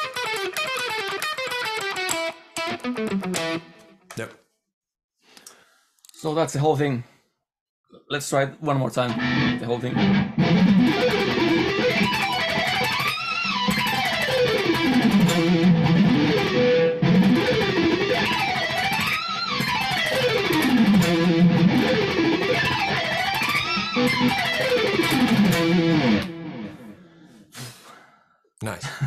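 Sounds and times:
electric guitar arpeggios: 0.0 - 4.0, 9.1 - 27.1.

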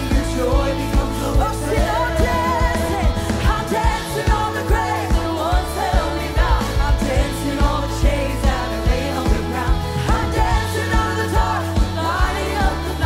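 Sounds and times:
live band playing upbeat song: 0.0 - 13.0
steady drum beat: 0.0 - 13.0
woman singing: 0.0 - 13.0.

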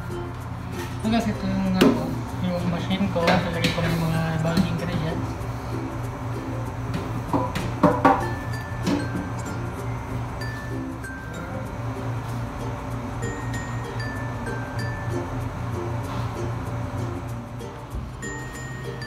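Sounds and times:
background music: 0.0 - 19.0.

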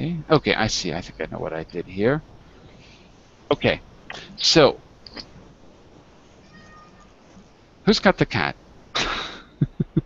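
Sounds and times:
child's high-pitched meow-like cry: 6.4 - 7.1.

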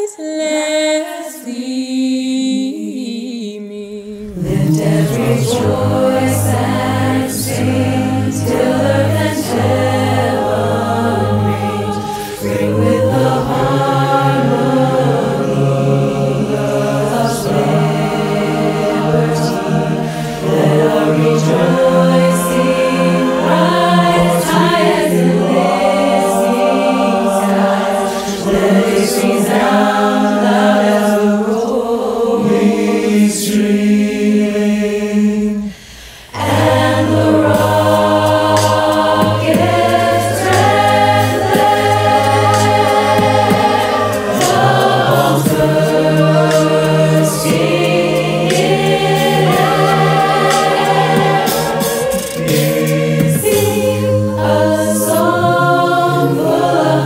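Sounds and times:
a cappella choir singing: 0.0 - 57.0
low sustained bass voices: 4.3 - 30.0, 36.4 - 57.0.

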